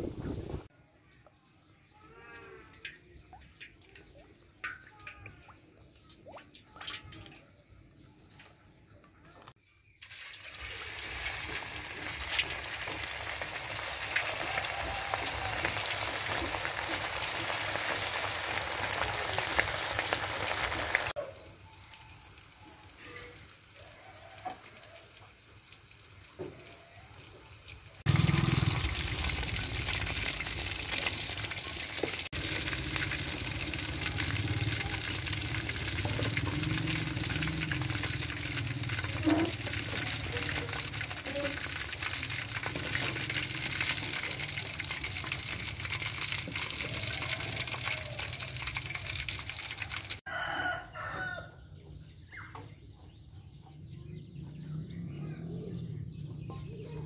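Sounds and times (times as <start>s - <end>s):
hot oil sizzling: 9.9s - 50.3s.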